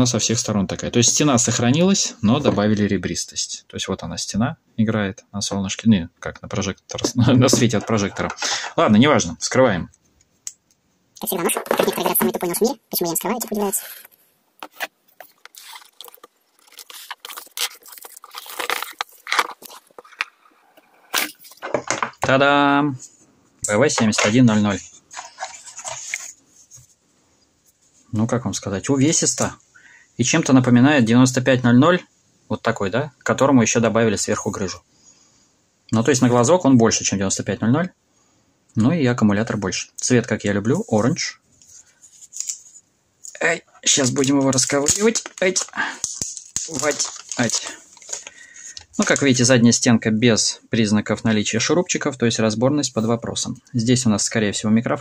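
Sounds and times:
man talking: 0:00.0 - 0:09.9, 0:22.2 - 0:25.0, 0:28.1 - 0:29.6, 0:30.2 - 0:34.8, 0:35.9 - 0:37.9, 0:38.8 - 0:41.4, 0:43.4 - 0:45.7, 0:46.7 - 0:47.8, 0:49.0 - 0:55.0
plastic film crackling and scraping: 0:11.2 - 0:22.1, 0:23.8 - 0:26.8, 0:43.8 - 0:49.5
knife slitting plastic film: 0:14.6 - 0:20.2.

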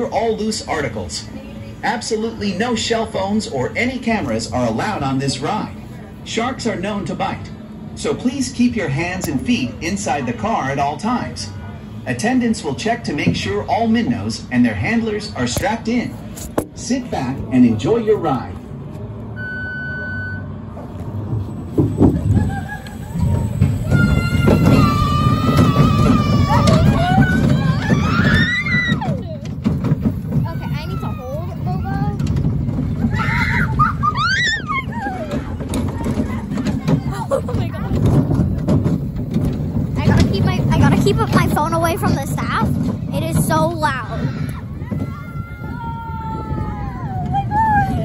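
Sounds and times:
roller coaster car rumbling: 0:00.0 - 0:48.0
riders screaming and shouting: 0:22.3 - 0:29.4, 0:30.3 - 0:38.1, 0:44.0 - 0:48.0.

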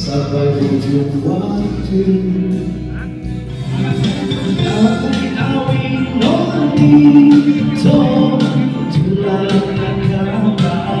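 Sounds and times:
man singing into a microphone: 0:00.0 - 0:02.9, 0:04.5 - 0:11.0
pop ballad backing music: 0:00.0 - 0:11.0.

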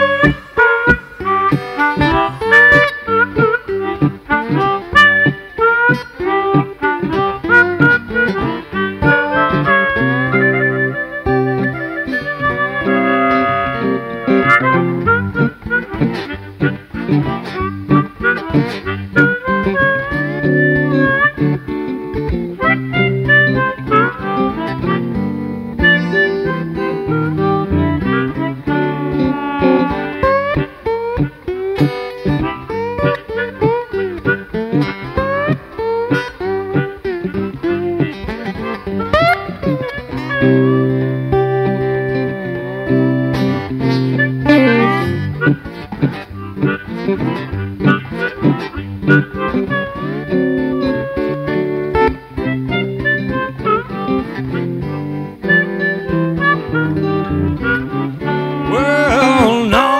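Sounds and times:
low guitar accompaniment: 0:00.0 - 0:59.9
slide guitar lead: 0:00.0 - 0:59.9.

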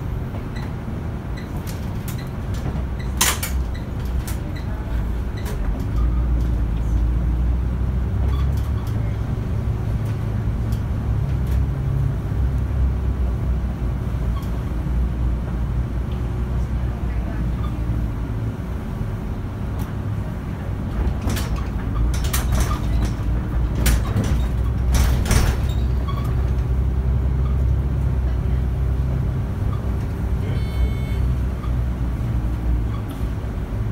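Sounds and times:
bus engine rumble: 0:00.0 - 0:33.9
cabin rattles and clicks: 0:20.9 - 0:26.8.

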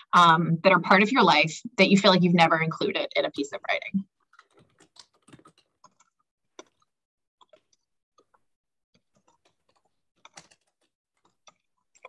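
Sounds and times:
keyboard typing: 0:04.2 - 0:06.8, 0:09.0 - 0:12.0.

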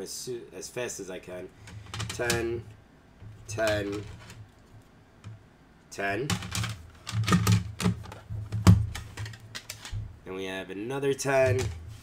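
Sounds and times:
plastic card cases clacking: 0:06.3 - 0:10.0.

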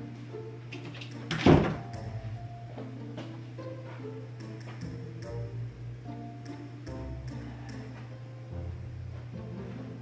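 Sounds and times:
door shutting with thud: 0:01.3 - 0:01.9.

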